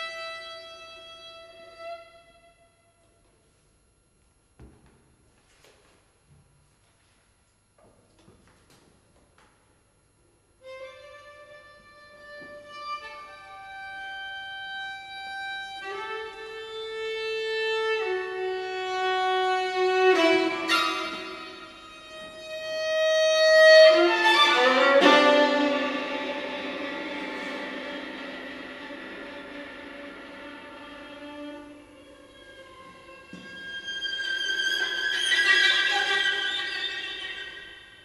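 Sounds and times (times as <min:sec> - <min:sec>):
viola bowed notes: 0:10.6 - 0:38.0.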